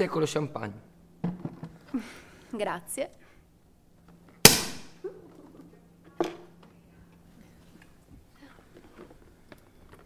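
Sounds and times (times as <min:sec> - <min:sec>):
champagne cork popping: 0:04.4 - 0:05.0.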